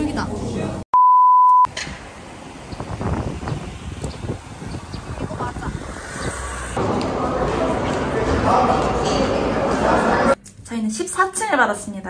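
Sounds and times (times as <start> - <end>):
electronic beep: 1.0 - 1.7.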